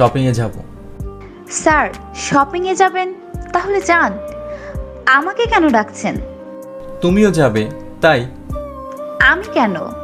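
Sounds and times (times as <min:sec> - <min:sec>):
soft background music: 0:00.0 - 0:10.0
person speaking: 0:06.8 - 0:08.5.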